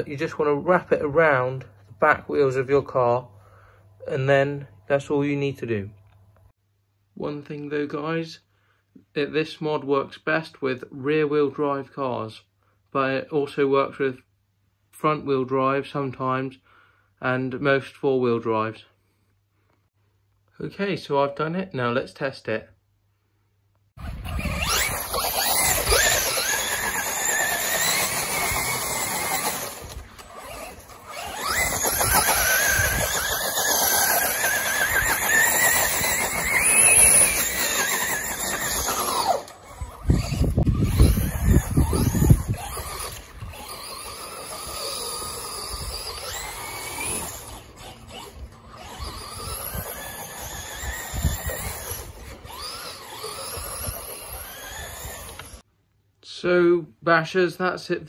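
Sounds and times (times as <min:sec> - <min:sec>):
electric motor whining: 0:24.0 - 0:55.6.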